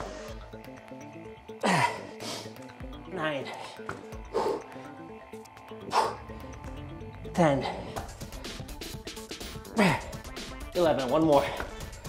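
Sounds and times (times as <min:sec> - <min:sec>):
background music: 0:00.0 - 0:12.0
man grunting with effort: 0:01.6 - 0:02.2, 0:09.7 - 0:10.2.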